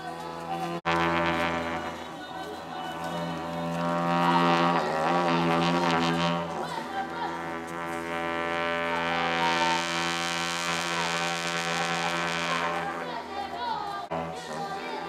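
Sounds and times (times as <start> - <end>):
deep steady drone: 0.0 - 15.0
higher wavering voices: 0.0 - 15.0.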